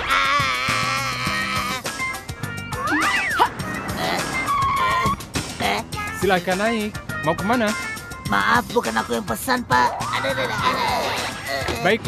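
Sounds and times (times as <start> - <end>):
tyres squealing: 0.0 - 6.2, 9.9 - 12.0
background music: 0.0 - 12.0.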